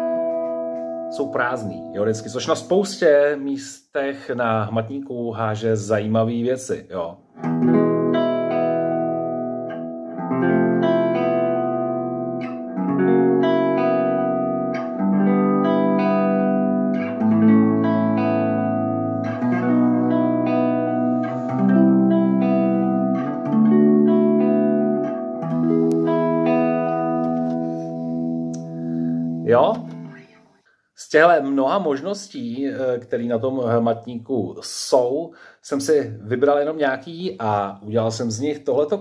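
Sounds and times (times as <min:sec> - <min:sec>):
clean electric guitar chords: 0:00.0 - 0:02.7, 0:07.4 - 0:30.4.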